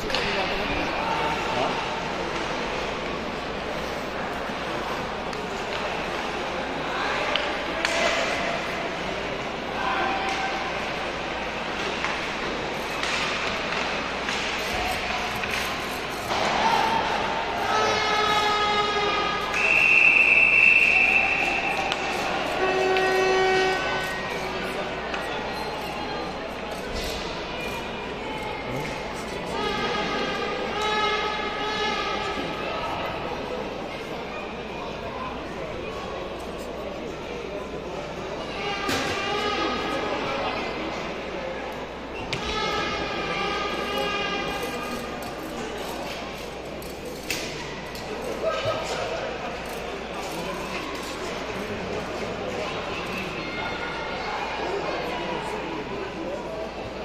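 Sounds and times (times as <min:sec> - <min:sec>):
spectators chatting: 0:00.0 - 0:57.0
low steady horn: 0:22.5 - 0:24.1.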